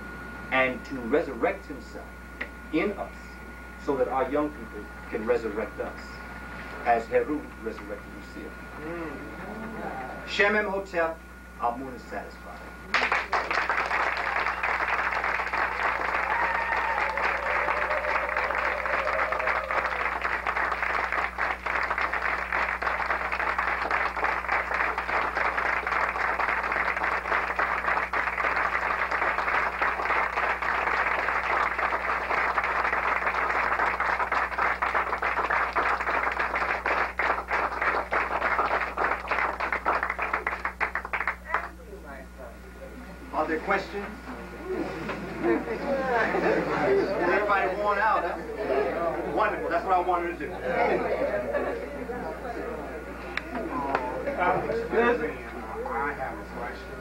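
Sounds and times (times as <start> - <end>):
audience applauding: 12.9 - 41.8.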